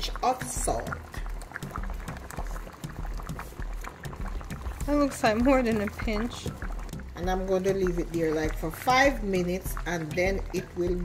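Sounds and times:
soup bubbling in pot: 0.0s - 11.0s
afrobeat music with bass beat: 0.5s - 11.0s.

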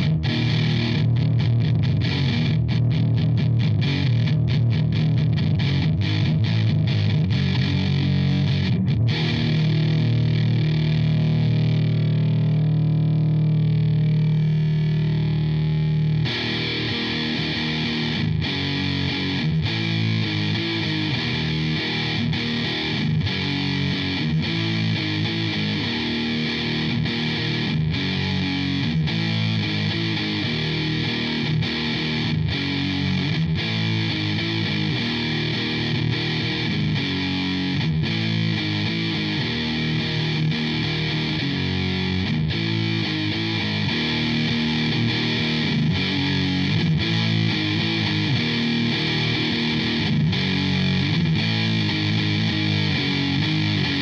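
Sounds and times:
distorted electric guitar: 0.0s - 54.0s.

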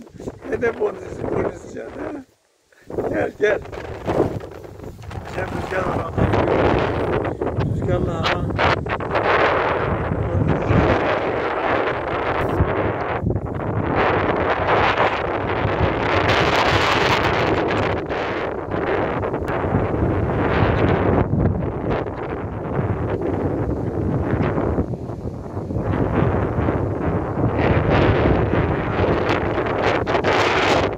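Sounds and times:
wind buffeting microphone: 0.0s - 30.9s.

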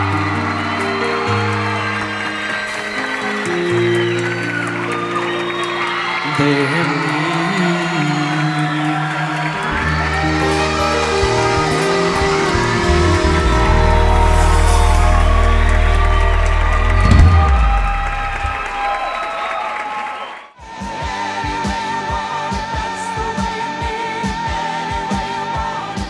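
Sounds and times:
held keyboard chords: 0.0s - 19.1s
deep bass notes: 9.7s - 19.1s.

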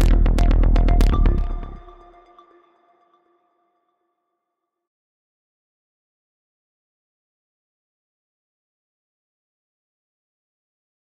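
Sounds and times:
electronic music: 0.0s - 3.5s.

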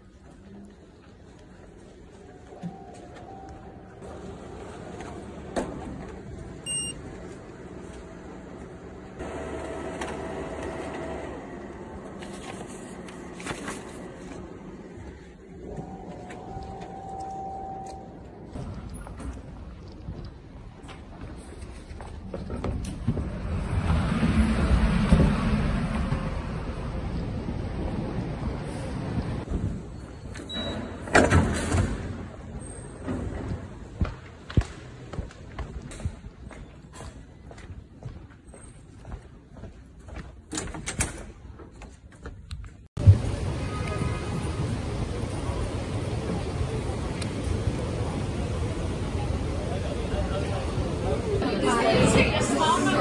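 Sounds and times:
faint electronic beep: 2.4s - 4.1s, 6.6s - 7.0s, 15.7s - 18.5s, 30.4s - 30.9s
printer electronic beep: 6.6s - 7.0s.

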